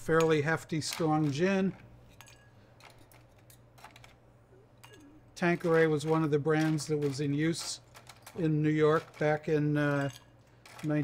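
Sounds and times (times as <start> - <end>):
metal tool and ice clinking glass: 4.8 - 5.1.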